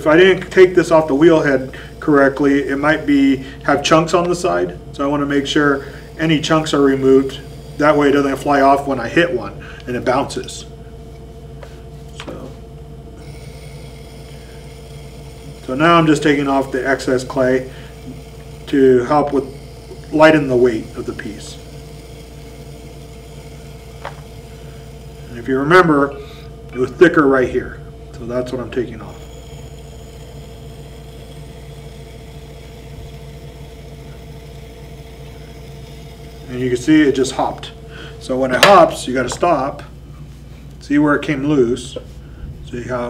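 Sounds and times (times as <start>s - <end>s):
potter's wheel humming: 0.0s - 43.0s
tool scraping clay: 13.2s - 37.8s.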